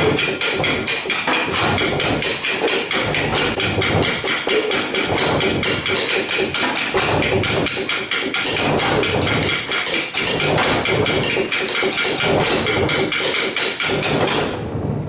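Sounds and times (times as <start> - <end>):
hand drums playing fast beat: 0.0 - 14.5.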